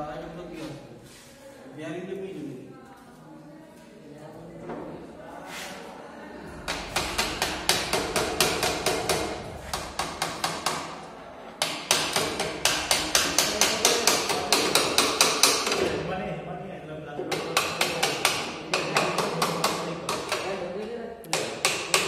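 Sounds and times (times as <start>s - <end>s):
hammer tapping on metal: 6.6s - 10.9s, 11.6s - 15.8s, 17.2s - 20.6s, 21.3s - 22.0s.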